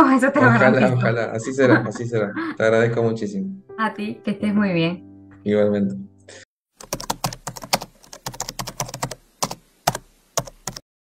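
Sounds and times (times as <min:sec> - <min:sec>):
computer keyboard typing: 0:06.8 - 0:10.8.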